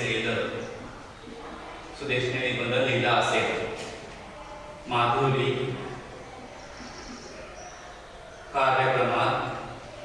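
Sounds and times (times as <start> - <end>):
marker squeaking on a whiteboard: 6.0 - 8.5.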